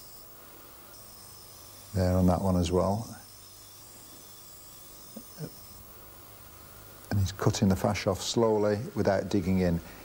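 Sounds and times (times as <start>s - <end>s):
blade on grinding wheel hissing: 0.0s - 10.0s.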